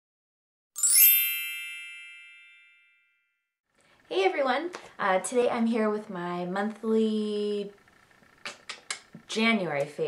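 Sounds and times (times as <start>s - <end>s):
bright chime ringing: 0.8s - 3.3s.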